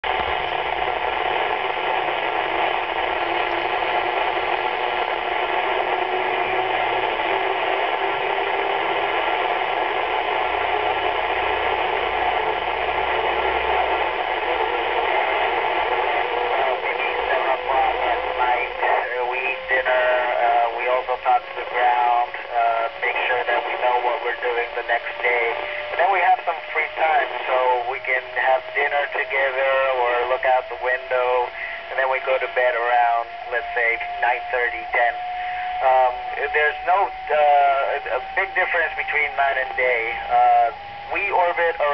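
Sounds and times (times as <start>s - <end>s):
radio static hiss: 0.0s - 41.9s
voice over radio: 0.1s - 41.9s.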